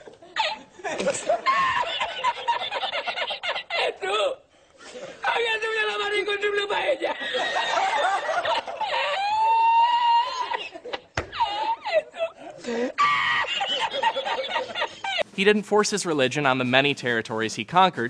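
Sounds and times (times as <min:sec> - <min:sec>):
man laughing hard: 0:00.0 - 0:04.4, 0:06.7 - 0:15.3.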